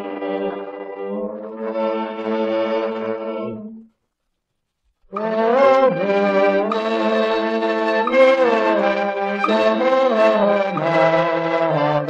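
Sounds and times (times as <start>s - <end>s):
harmonica ensemble chords: 5.2s - 12.0s.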